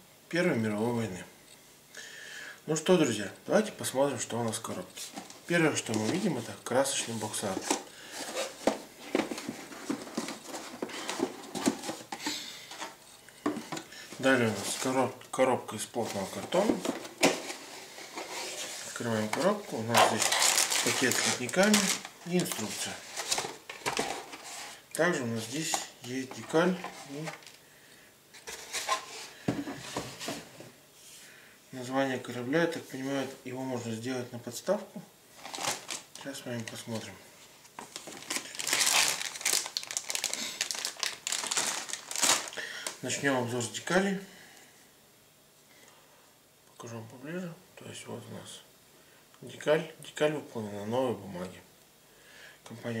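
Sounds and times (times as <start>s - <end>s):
cardboard rustling and sliding: 7.0s - 13.0s, 16.0s - 24.8s, 28.3s - 30.8s
plastic bag crinkling: 18.3s - 24.6s, 35.4s - 36.3s, 37.8s - 43.0s.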